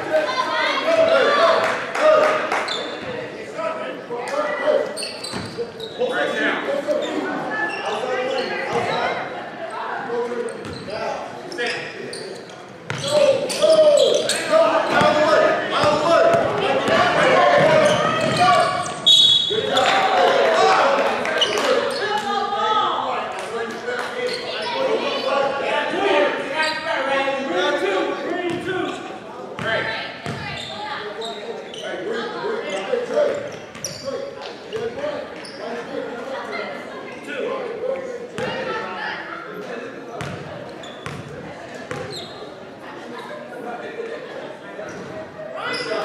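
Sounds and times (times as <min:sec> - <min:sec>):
voices echoing in hall: 0:00.0 - 0:46.0
basketball bouncing on court: 0:15.8 - 0:18.8, 0:29.6 - 0:30.6, 0:40.2 - 0:41.3
referee's whistle: 0:18.6 - 0:19.8.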